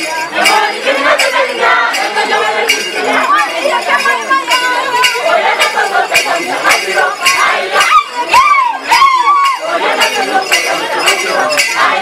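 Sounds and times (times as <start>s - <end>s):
group singing and chanting: 0.0s - 12.0s.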